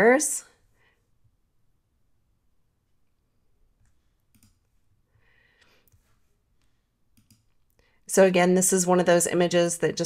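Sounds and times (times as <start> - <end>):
faint computer mouse clicks: 3.8 - 4.7, 5.8 - 7.7.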